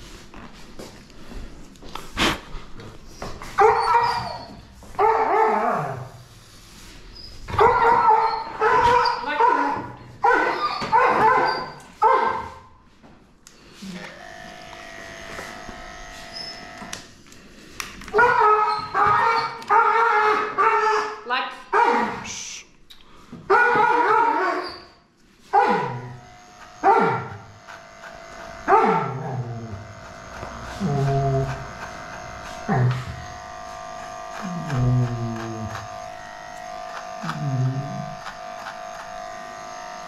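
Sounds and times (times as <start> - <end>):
dog whining and barking: 3.1 - 6.1, 7.2 - 12.6, 18.1 - 21.2, 23.5 - 26.2, 26.8 - 27.4, 28.7 - 29.8, 30.8 - 31.7.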